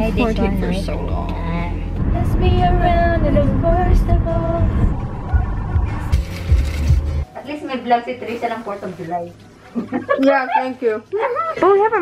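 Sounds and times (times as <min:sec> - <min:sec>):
road rumble inside car: 0:02.0 - 0:06.2
voices in a room: 0:07.2 - 0:12.0.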